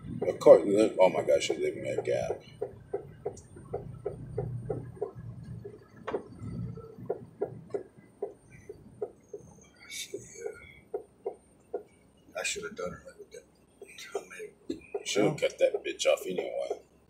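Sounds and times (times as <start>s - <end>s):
engine and road hum: 0.0s - 17.0s
turn signal clicking: 1.4s - 12.0s.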